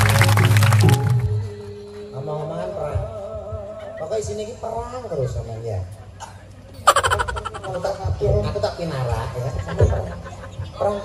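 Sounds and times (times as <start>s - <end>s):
falling wordless vocal sound: 6.9s - 7.9s.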